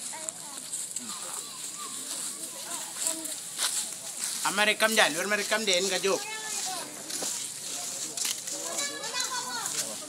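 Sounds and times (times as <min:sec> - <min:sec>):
onlookers chattering: 0:00.0 - 0:10.0.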